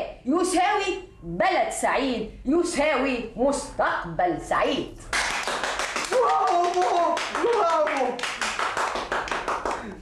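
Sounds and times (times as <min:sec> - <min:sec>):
crowd applauding: 0:05.2 - 0:10.0.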